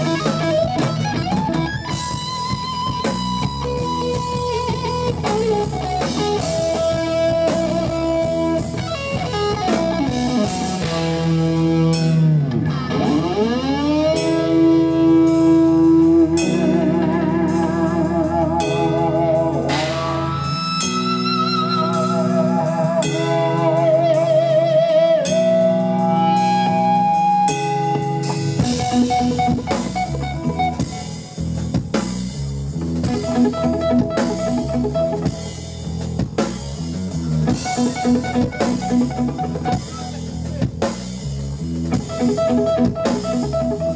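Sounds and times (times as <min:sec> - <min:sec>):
bass guitar: 0:00.0 - 0:43.9
drum kit: 0:00.0 - 0:43.9
electric guitar lead: 0:00.0 - 0:43.9.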